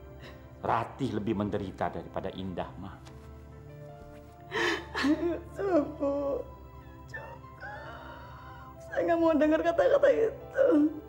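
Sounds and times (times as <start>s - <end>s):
soft background music: 0.0s - 11.0s
woman sobbing gasp: 4.5s - 8.8s.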